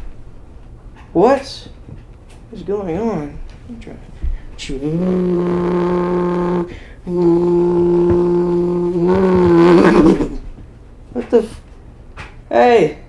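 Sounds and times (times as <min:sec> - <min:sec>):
man imitating engine with mouth: 0:04.6 - 0:10.5.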